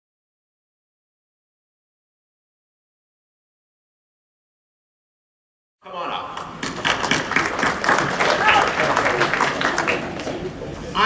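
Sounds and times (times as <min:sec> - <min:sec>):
indistinct crowd voices: 0:05.8 - 0:11.0
scattered clapping: 0:06.3 - 0:10.6.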